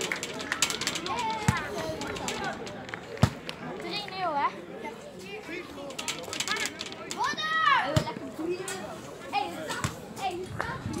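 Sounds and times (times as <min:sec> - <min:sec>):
players calling and shouting: 0:00.0 - 0:08.7.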